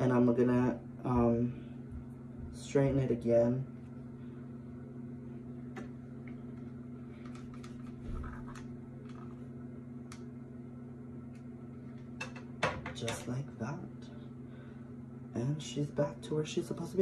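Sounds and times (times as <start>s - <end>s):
low electrical hum: 0.0s - 17.0s.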